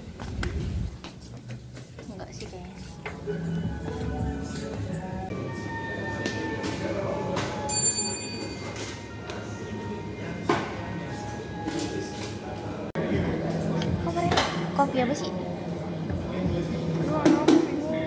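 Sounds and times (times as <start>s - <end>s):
background music: 2.1s - 18.0s.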